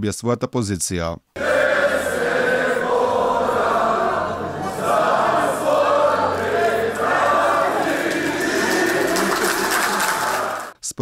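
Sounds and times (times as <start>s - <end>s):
group of people singing: 1.4s - 10.8s
hand clapping: 5.5s - 10.8s.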